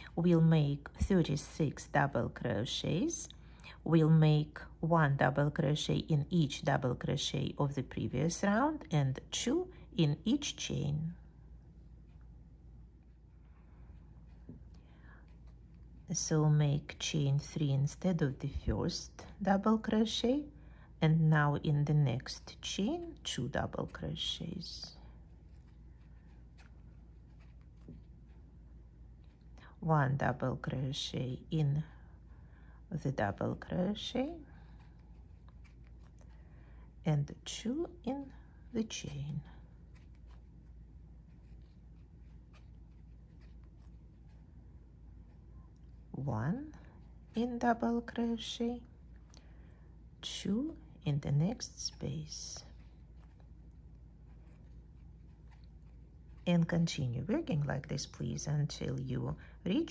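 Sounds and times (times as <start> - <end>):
steady low hum: 0.0 - 59.9
crochet hook scratching thread: 21.3 - 32.1, 33.0 - 49.7, 50.4 - 58.7.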